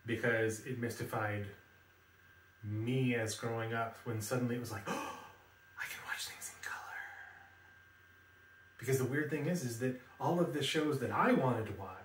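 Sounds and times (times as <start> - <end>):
man's whispered gasp: 4.8 - 5.4.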